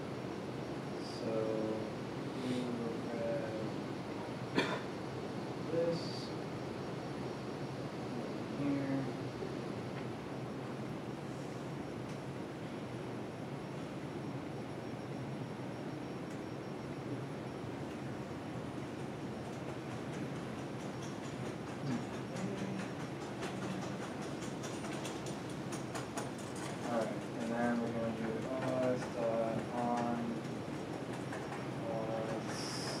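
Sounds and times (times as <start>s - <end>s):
room noise: 5.1s - 33.0s
typing on laptop keyboard: 18.9s - 33.0s.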